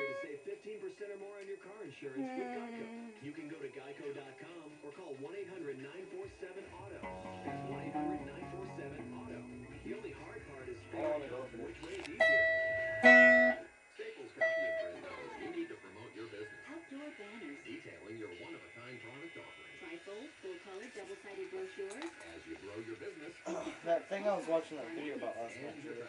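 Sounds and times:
electric guitar notes ringing: 0.0s - 0.3s, 7.0s - 9.9s, 12.2s - 13.7s, 14.4s - 15.0s
quiet voices: 0.0s - 24.0s
background music: 7.0s - 11.5s.

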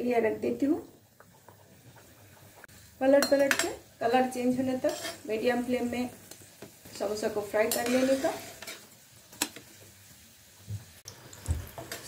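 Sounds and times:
oil sizzling while deep-frying: 0.0s - 12.0s.

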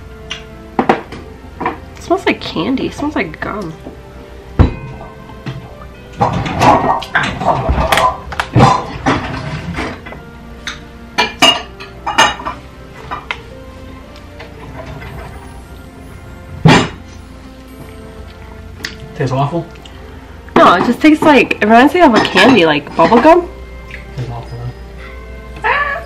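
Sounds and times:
background music: 0.0s - 26.0s
kitchen things clinking: 4.6s - 13.5s, 20.5s - 25.2s.

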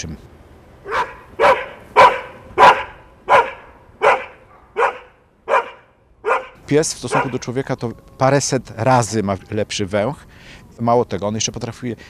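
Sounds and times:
dog barking: 0.9s - 7.4s.

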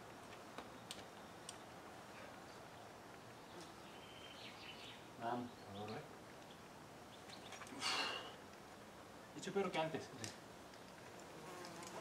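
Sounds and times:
faint open air hiss: 0.0s - 12.0s.

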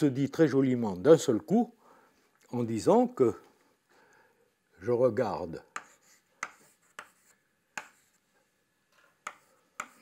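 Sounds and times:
chalk tapping on blackboard: 5.7s - 8.2s, 9.2s - 10.0s
chalk scratching: 5.7s - 8.3s, 9.2s - 10.0s.

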